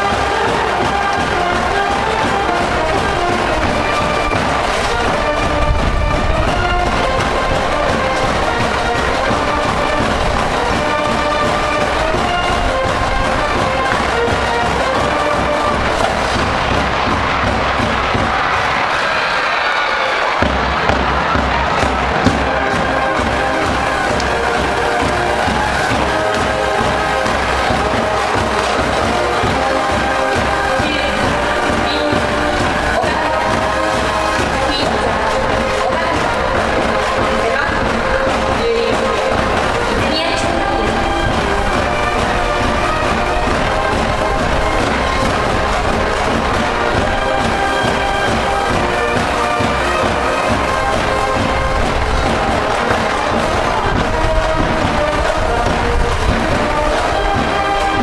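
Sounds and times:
brass band playing: 0.0 - 58.0
crowd shouting along: 0.0 - 58.0.

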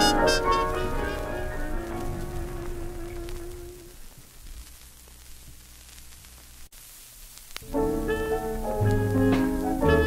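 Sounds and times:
recording hiss and hum: 0.0 - 10.0.

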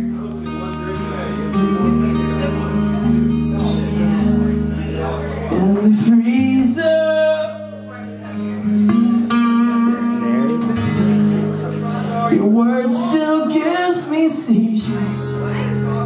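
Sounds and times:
acoustic guitar strumming chords: 0.0 - 16.0
man singing through pa: 5.5 - 7.9, 12.3 - 15.5.

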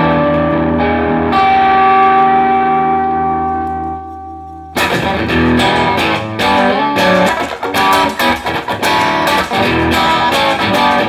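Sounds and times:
distorted electric guitar note: 0.0 - 7.3.

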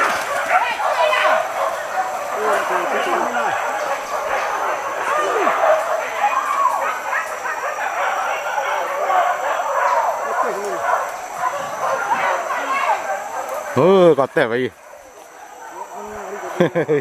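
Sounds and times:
dogs yelping and barking: 0.0 - 16.5.

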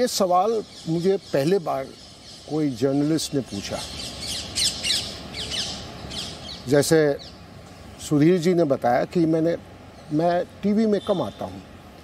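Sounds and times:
birds chirping and squawking: 0.0 - 7.9.

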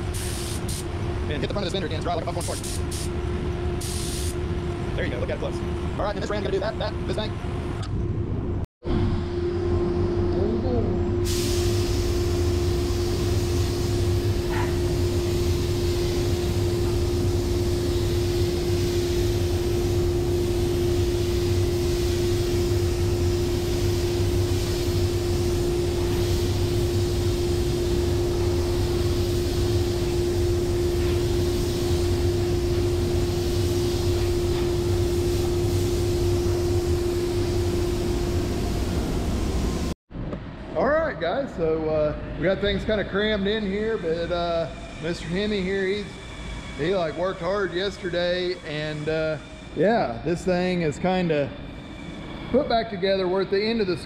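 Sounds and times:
spray gun hissing: 0.0 - 0.9, 2.4 - 3.2, 3.8 - 4.4, 11.2 - 39.8
ventilation rumble and hum: 0.0 - 54.0.

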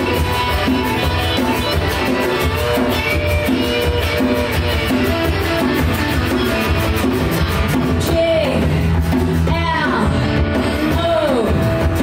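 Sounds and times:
djembe played by hand: 0.0 - 8.2
electric guitar: 0.0 - 12.0.

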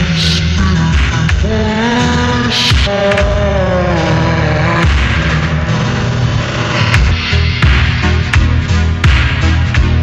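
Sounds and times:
pulsing bass: 0.0 - 10.0.

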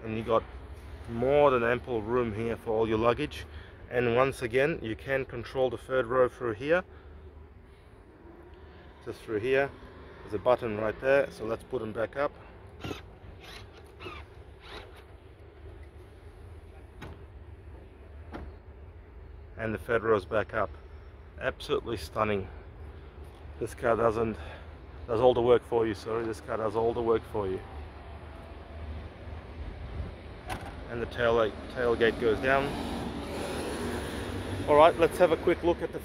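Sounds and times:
short rising squeaks: 12.8 - 15.2.

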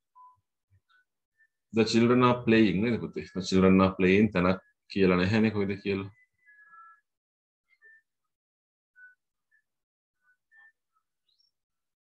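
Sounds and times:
faint bird chirps: 8.9 - 12.0.

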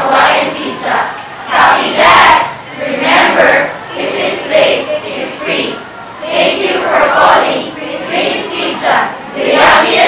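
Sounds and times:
students speaking in unison: 0.0 - 10.0.

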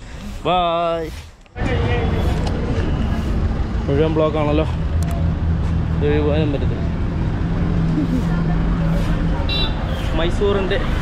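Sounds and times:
street traffic noise: 0.0 - 11.0.

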